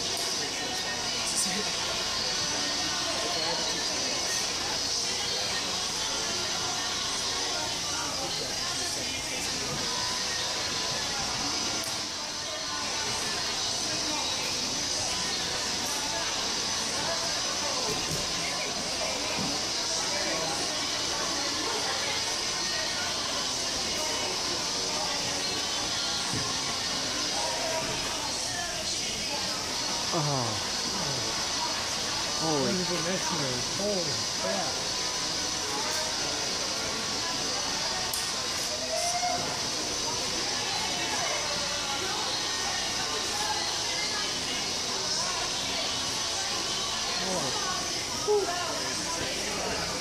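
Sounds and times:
indistinct voices: 0:24.6 - 0:34.9.

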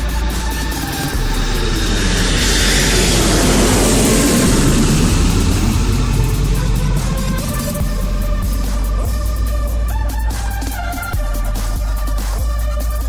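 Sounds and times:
whooshing noise sweep: 0:00.0 - 0:12.4
electronic music with deep bass: 0:00.0 - 0:13.0.

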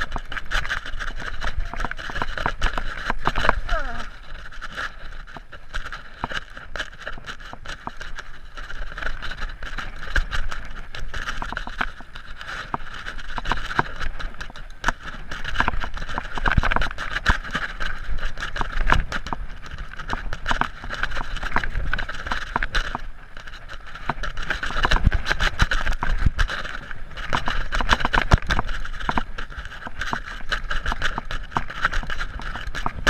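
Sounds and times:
tyres and frame knocking on stones: 0:00.0 - 0:23.0.

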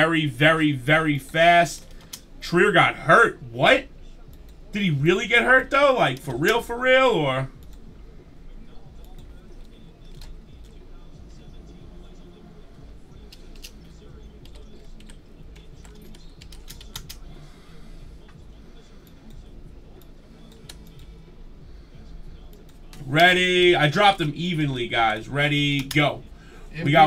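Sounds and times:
low background hum: 0:00.0 - 0:27.0.

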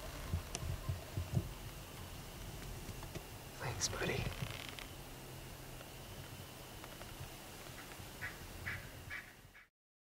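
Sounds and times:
low background rumble: 0:00.0 - 0:09.6
bird calling: 0:07.7 - 0:09.7.

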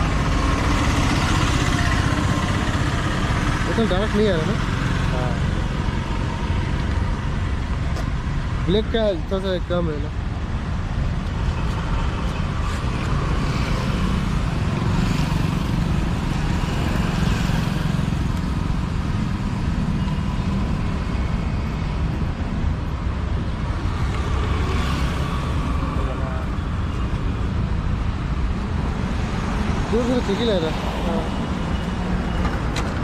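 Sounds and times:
traffic rumble: 0:00.0 - 0:33.0.

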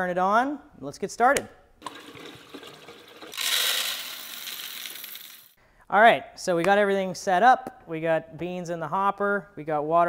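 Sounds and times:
coffee beans pouring rattle: 0:01.8 - 0:05.6.

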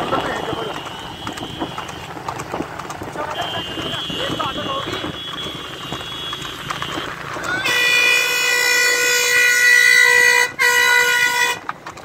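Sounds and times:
road and wind noise: 0:00.0 - 0:12.0
vehicle horn blasts: 0:00.2 - 0:02.1, 0:03.3 - 0:11.6.

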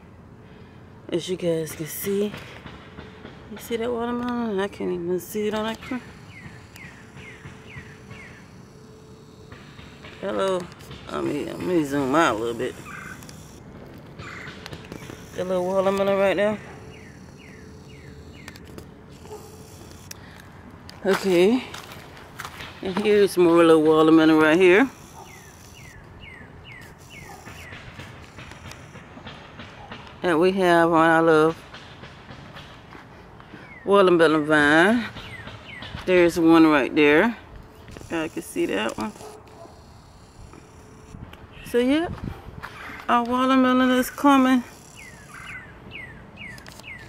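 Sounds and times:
bird chirping: 0:05.2 - 0:13.6, 0:14.2 - 0:20.4, 0:24.4 - 0:30.2, 0:33.5 - 0:34.1, 0:35.1 - 0:36.3, 0:43.9 - 0:47.0
bird whistling downward notes: 0:06.2 - 0:08.6, 0:44.8 - 0:47.0.

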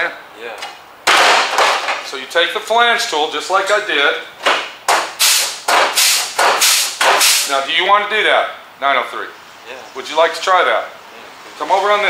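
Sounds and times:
pneumatic tool snapping: 0:04.5 - 0:07.5.

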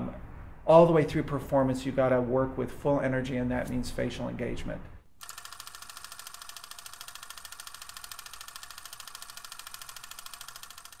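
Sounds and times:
small machine clattering: 0:05.2 - 0:11.0.

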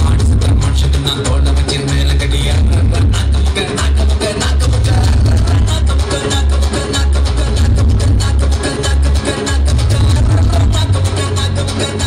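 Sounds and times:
dance music with heavy bass beat: 0:00.0 - 0:12.0.

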